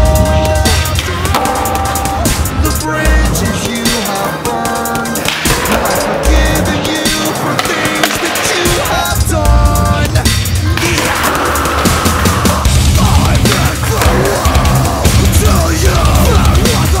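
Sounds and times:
skateboard wheels rolling on concrete: 0.0 - 9.2, 10.5 - 16.8
loud background music: 0.0 - 17.0
skateboard clattering and slapping: 5.2 - 8.8.

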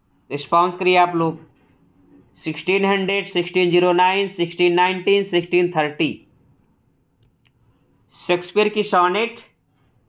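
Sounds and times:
man speaking: 0.3 - 1.6, 2.2 - 6.3, 8.0 - 9.6.

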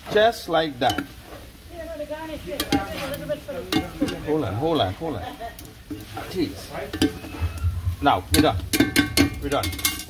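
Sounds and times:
light sizzle: 0.0 - 10.0
metal tongs scraping a wok: 0.8 - 1.7, 2.3 - 4.9, 5.6 - 10.0.

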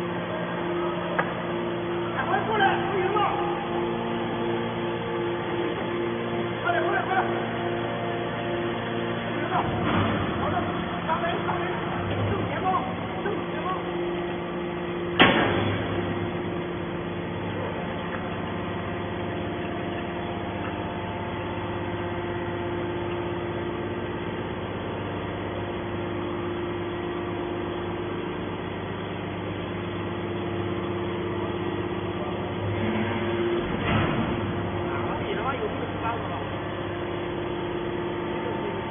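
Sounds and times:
hydraulic pump hum: 0.0 - 38.9
loud metallic clunk: 9.6 - 10.5, 15.2 - 16.3, 32.8 - 34.8.

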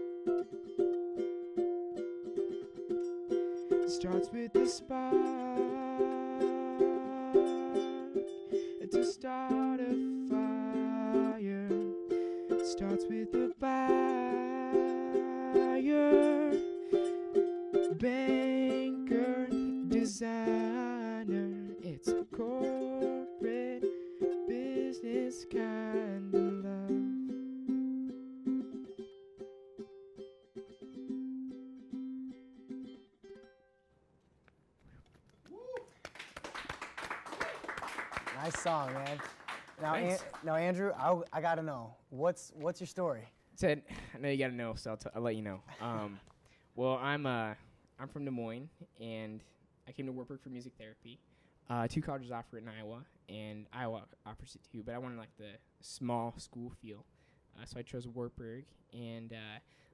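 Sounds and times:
ukulele strumming: 0.0 - 33.8, 39.8 - 40.3
man singing: 3.8 - 16.8, 17.8 - 27.5
people clapping: 35.3 - 41.4.

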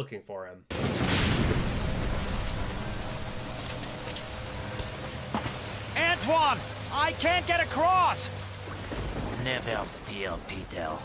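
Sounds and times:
heavy rain downpour: 0.7 - 11.0.

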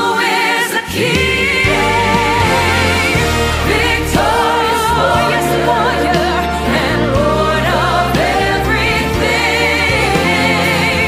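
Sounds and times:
choir singing gospel: 0.0 - 11.0
orchestral accompaniment: 1.6 - 10.8.

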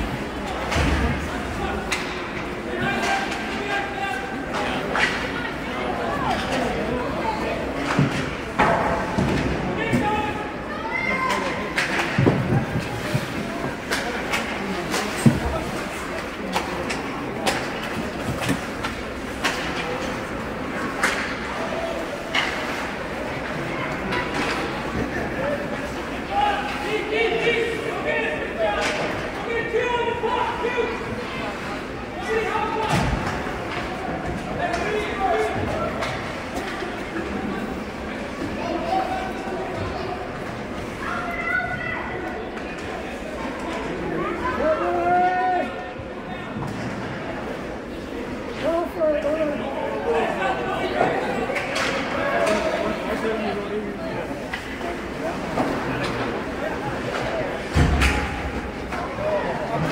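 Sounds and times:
pucks hitting boards: 11.3 - 21.5.

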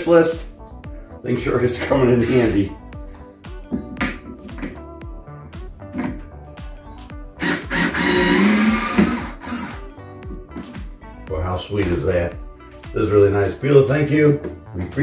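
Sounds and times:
background music with beat: 0.0 - 15.0
power screwdriver running: 7.4 - 9.8.

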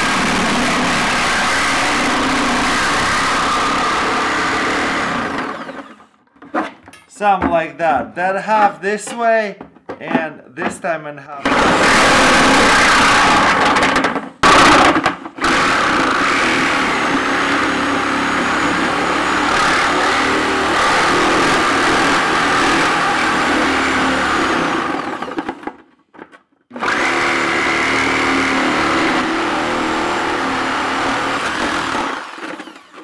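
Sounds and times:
reciprocating saw cutting plastic: 0.0 - 6.2, 11.4 - 25.8, 26.7 - 33.0.

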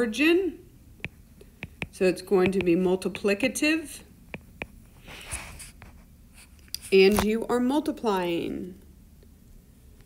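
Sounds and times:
person speaking: 0.0 - 5.7, 6.7 - 8.8
stylus scratching on glass screen: 1.1 - 3.3.

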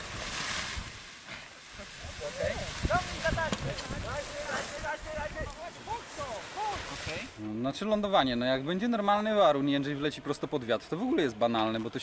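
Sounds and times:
wind rushing over microphone: 2.1 - 5.6.

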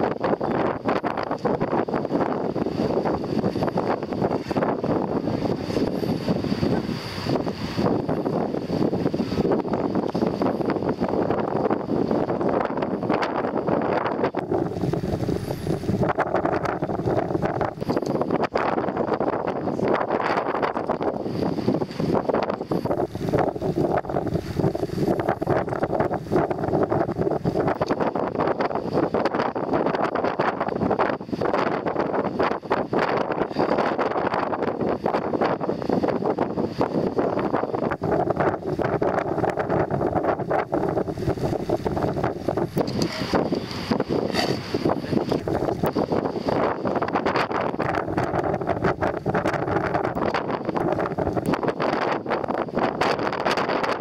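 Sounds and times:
boat engine running: 0.0 - 54.0
wind buffeting microphone: 0.0 - 54.0.

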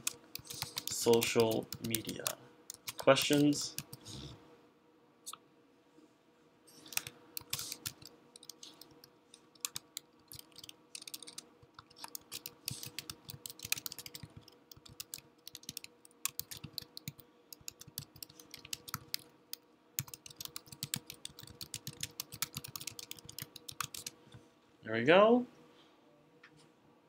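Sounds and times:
typing on a computer keyboard: 0.0 - 4.1, 6.8 - 19.3, 20.0 - 24.2.

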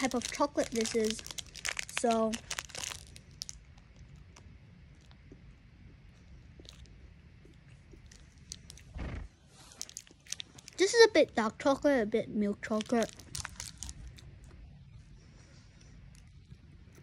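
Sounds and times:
chewing chocolate: 0.0 - 8.9, 9.6 - 10.8, 12.6 - 14.7.

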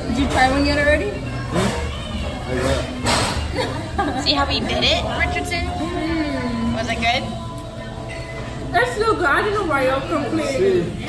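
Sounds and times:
low restaurant room hum: 0.0 - 11.0.

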